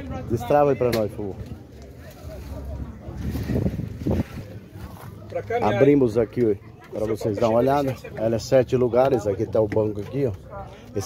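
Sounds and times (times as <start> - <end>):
wind on microphone: 2.7 - 4.8.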